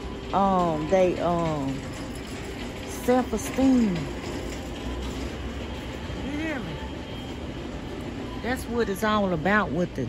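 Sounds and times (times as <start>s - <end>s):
store background rumble and hiss: 0.0s - 10.0s.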